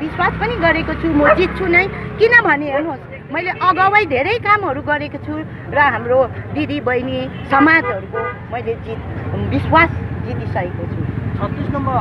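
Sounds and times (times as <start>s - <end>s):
woman talking: 0.0s - 8.8s
low rumble of street noise: 0.0s - 12.0s
vehicle horn toot: 7.4s - 8.6s.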